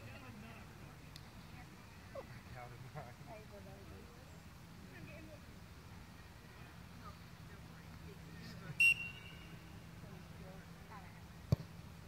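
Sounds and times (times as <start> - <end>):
faint distant voices: 0.0 - 12.0
referee whistle blowing: 8.8 - 9.6
ball being kicked: 11.5 - 11.7.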